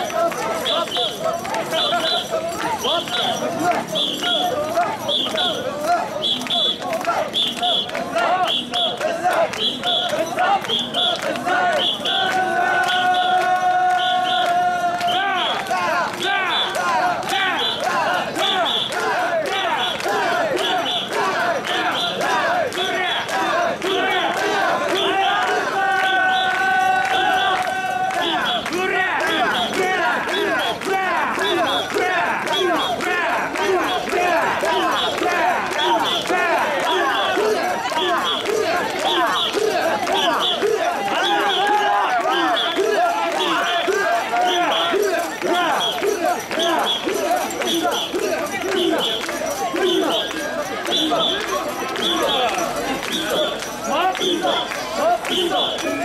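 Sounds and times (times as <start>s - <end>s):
crowd shouting rhythmic chant: 0.0s - 56.0s.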